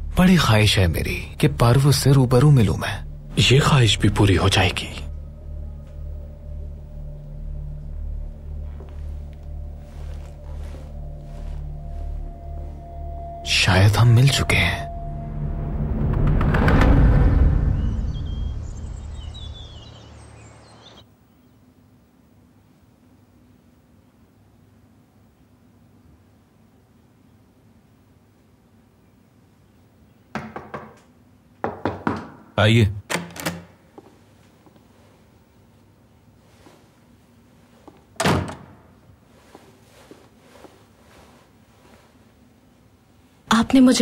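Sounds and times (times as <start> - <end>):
deep rumble: 3.0 - 19.8
faint bird chirps: 17.6 - 21.7
door latch click: 33.1 - 33.8
door shutting thud: 38.2 - 38.9.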